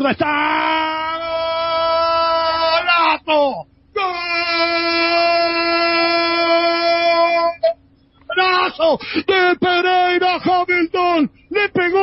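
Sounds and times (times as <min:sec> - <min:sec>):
commentator shouting goal: 0:06.2 - 0:12.0.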